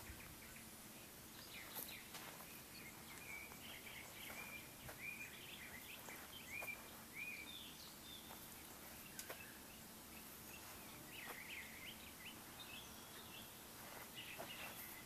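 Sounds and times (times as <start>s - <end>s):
songbird whistling: 1.5s - 8.4s.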